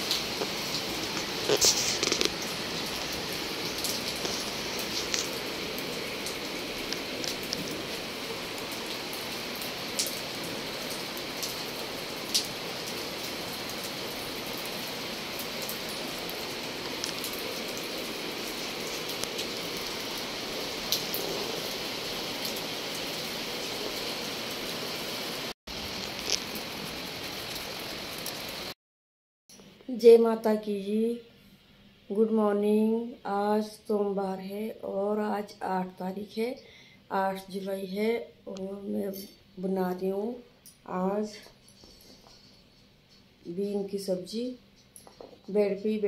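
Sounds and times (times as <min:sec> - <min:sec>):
rain on concrete: 0:00.0 - 0:28.8, 0:40.6 - 0:46.0.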